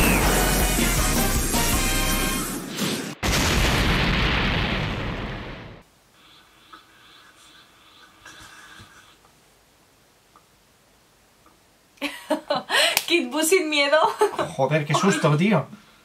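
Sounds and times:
music: 0.0s - 2.6s
loud explosion boom: 0.0s - 5.8s.

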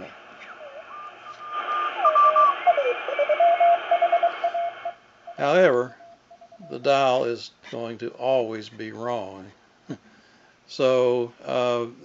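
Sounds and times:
radio band hiss: 0.0s - 6.0s
whistling carrier tones: 0.4s - 6.9s
morse code tone: 0.6s - 7.0s.

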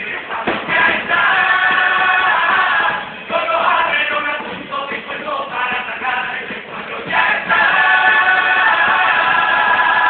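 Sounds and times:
chorus singing together: 0.0s - 10.0s.

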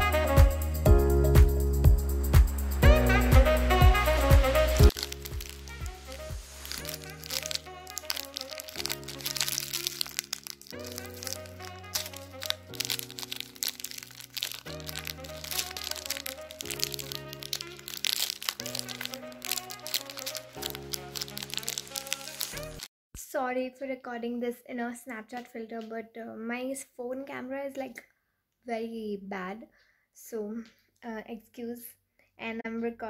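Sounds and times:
background music with slow chords: 0.0s - 22.8s
foil snack wrapper crinkling: 4.9s - 22.9s.

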